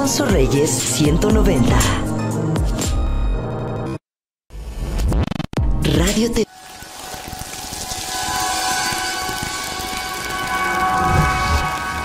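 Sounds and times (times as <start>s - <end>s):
rushing rain-like noise: 6.5s - 12.0s
shimmering held chord: 6.5s - 12.0s.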